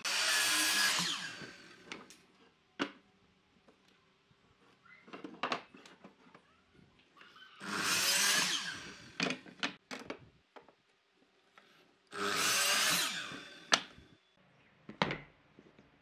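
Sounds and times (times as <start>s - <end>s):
miter saw cutting wood: 0.0s - 1.9s, 7.6s - 9.2s, 12.1s - 13.8s.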